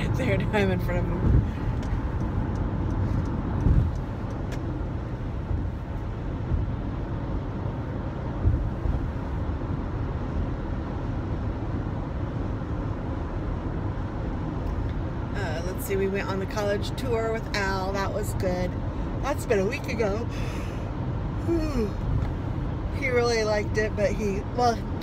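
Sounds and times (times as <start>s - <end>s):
low bumps: 0.0s - 7.0s
road and engine noise in car: 0.0s - 25.0s.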